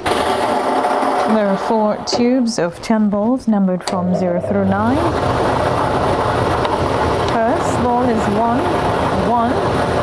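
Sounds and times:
lottery ball machine blower rushing: 3.8s - 10.0s.

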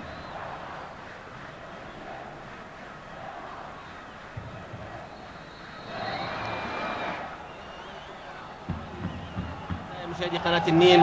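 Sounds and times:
faint stadium crowd noise: 0.0s - 11.0s
low thumps: 4.3s - 6.1s, 8.6s - 9.9s.

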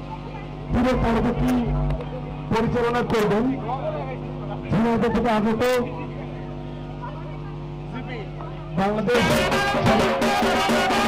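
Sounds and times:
faint voices: 0.0s - 11.0s
steady low hum: 0.0s - 11.0s.

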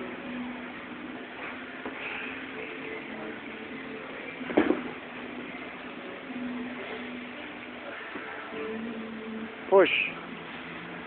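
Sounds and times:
gym background noise: 0.0s - 11.0s.

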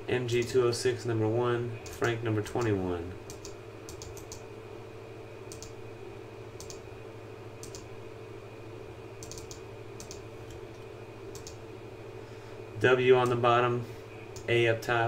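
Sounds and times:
steady electrical hum: 0.0s - 15.0s
mouse and keyboard clicks: 9.2s - 10.2s.

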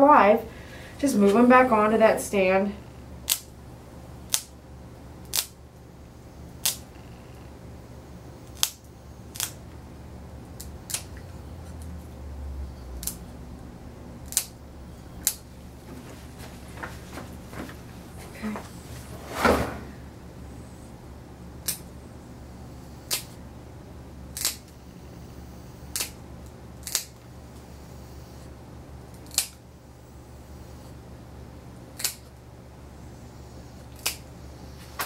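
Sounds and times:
nail clippers clicking: 3.3s - 3.5s, 5.2s - 5.6s, 6.6s - 7.2s, 8.5s - 9.6s, 10.6s - 11.9s, 13.0s - 13.2s, 14.2s - 14.5s, 21.6s - 21.8s, 23.1s - 23.4s, 24.4s - 24.7s, 25.9s - 26.2s, 26.8s - 27.2s, 29.2s - 29.6s, 32.0s - 32.3s, 34.0s - 34.2s.

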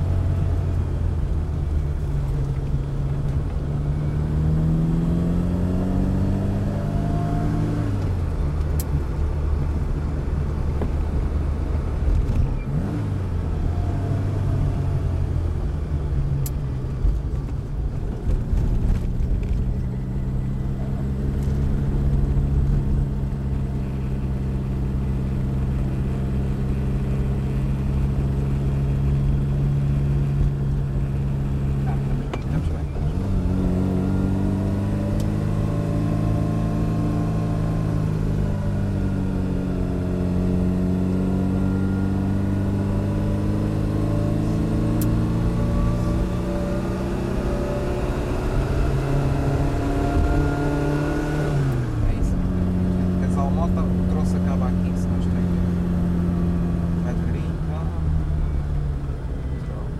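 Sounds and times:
car engine from inside cabin: 0.0s - 59.9s.

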